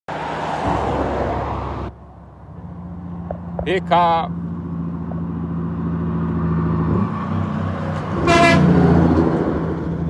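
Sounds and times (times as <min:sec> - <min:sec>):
diesel truck exhaust roar: 0:00.6 - 0:10.0.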